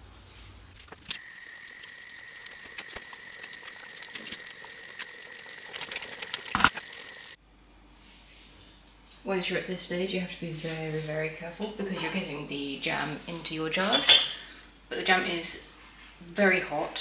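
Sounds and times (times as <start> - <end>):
jam boiling with pops and spits: 0.8 - 7.4.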